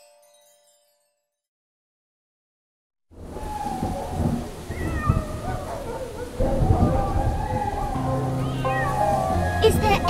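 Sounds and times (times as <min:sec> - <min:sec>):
rain noise: 0:03.1 - 0:10.0
rumbling thunder: 0:03.2 - 0:10.0.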